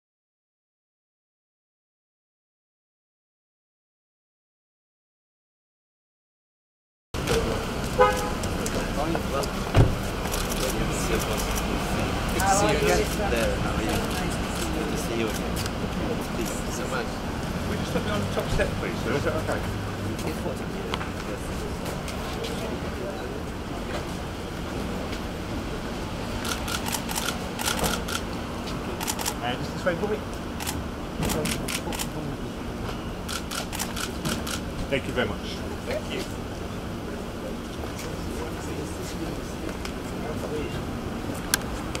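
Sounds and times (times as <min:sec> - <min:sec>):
faint murmured voices: 0:07.2 - 0:42.0
low street rumble: 0:07.2 - 0:42.0
camera shutters clicking: 0:26.4 - 0:28.2, 0:29.0 - 0:29.4, 0:30.6 - 0:32.1, 0:33.3 - 0:34.7.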